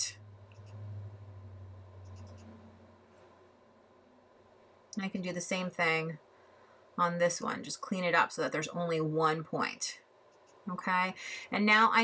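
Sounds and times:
low hum: 0.0 - 5.3
computer mouse clicks: 0.5 - 0.8, 2.0 - 2.5.

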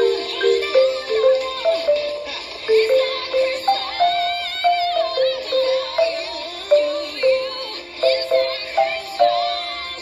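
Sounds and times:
marimba struck with mallets: 0.0 - 9.8
recorded pop song with singing: 0.0 - 10.0.

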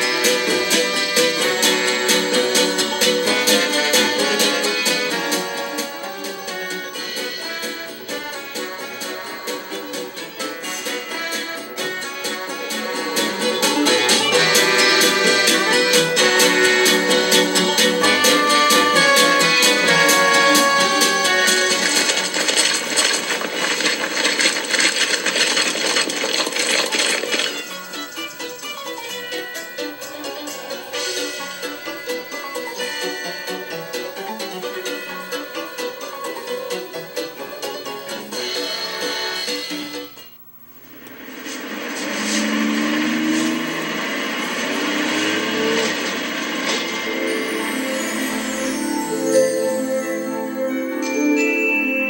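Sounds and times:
bus engine and road noise: 10.2 - 29.7, 40.9 - 48.5.

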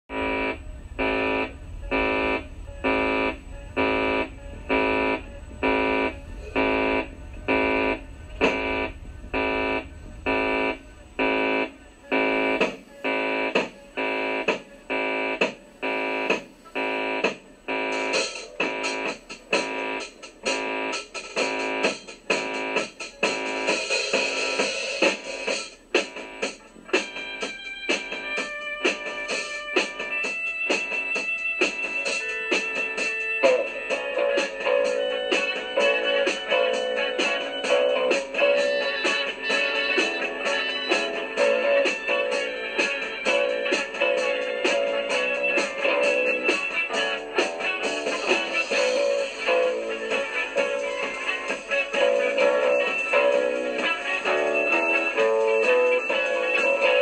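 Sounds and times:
electric guitar chords: 0.1 - 16.2
low hum: 0.1 - 19.1.

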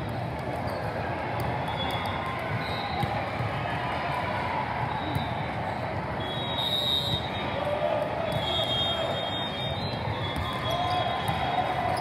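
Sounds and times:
balls bouncing on courts: 0.0 - 3.7, 9.8 - 12.0
many voices chattering: 0.0 - 12.0.

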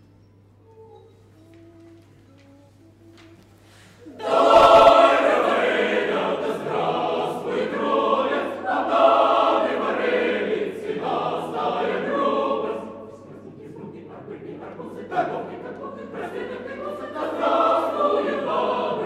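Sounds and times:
choir singing a cappella: 3.9 - 19.0.

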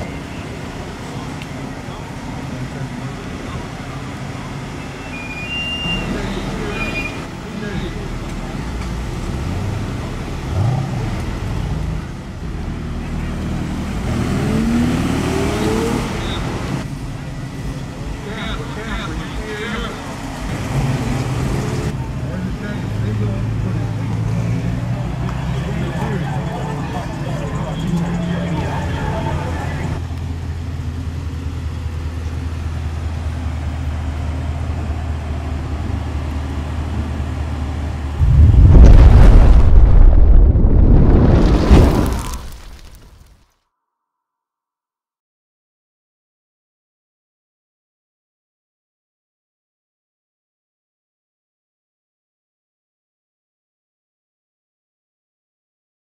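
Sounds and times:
car engines running at low speed: 0.0 - 5.0, 6.0 - 42.2
explosion sound effect: 38.2 - 43.3.

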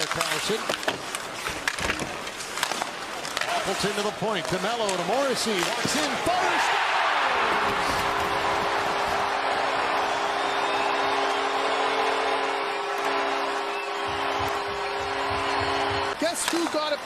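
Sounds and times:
crowd cheering: 5.2 - 17.0
goal horn chord: 7.6 - 16.2.

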